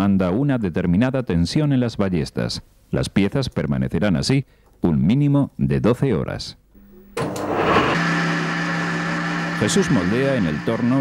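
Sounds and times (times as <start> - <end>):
lathe motor hum: 7.0 - 11.0.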